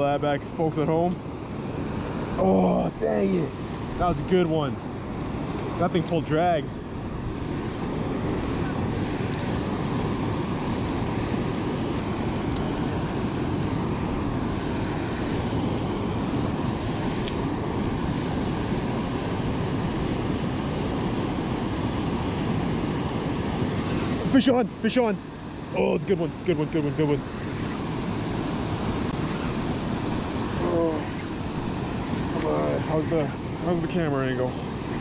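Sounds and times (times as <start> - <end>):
roar of water through spillway: 2.0 - 3.5.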